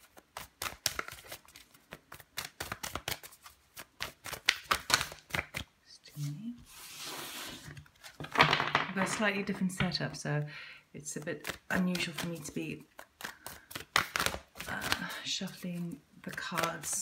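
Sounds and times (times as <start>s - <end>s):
cards being shuffled: 0.0s - 9.2s, 11.4s - 17.0s.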